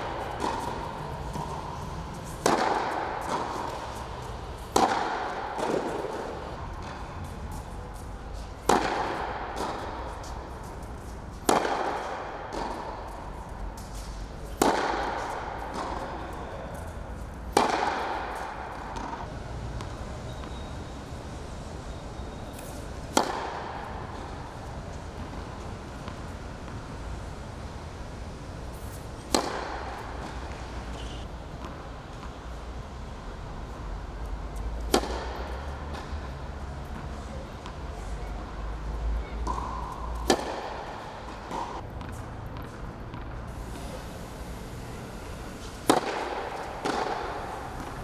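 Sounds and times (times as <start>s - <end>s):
tennis racket hitting ball: 0.0s - 20.6s, 22.6s - 27.1s, 28.7s - 32.4s, 34.8s - 36.3s, 39.3s - 48.0s
low hum of hall: 0.0s - 48.0s
distant ball hits: 2.4s - 3.9s, 4.7s - 7.0s, 8.6s - 10.2s, 17.5s - 19.2s, 39.4s - 41.8s, 45.8s - 48.0s
faint distant ball hits and bounces: 39.0s - 43.3s.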